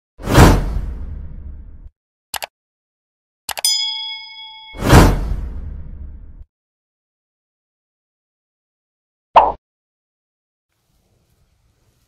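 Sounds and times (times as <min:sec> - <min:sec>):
bell ding: 0:03.6 - 0:05.2.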